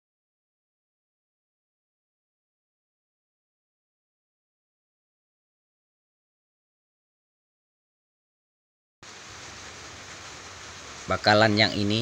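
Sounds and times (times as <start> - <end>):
outdoor background hiss: 9.0 - 12.0.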